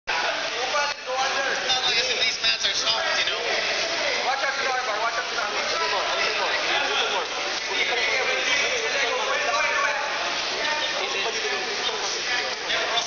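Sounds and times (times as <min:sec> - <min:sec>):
crowd talking and calling out: 0:00.1 - 0:13.0.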